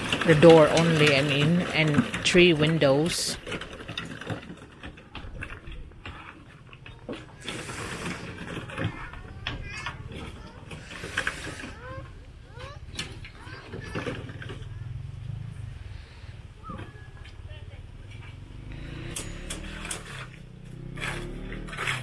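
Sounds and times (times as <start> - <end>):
buckets and tools knocking: 0.0 - 12.2
faint voices: 4.7 - 18.6.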